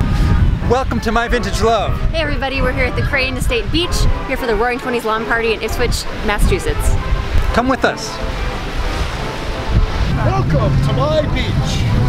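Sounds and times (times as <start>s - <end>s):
wind across microphone: 0.0s - 12.0s
small waves on shore: 3.6s - 12.0s.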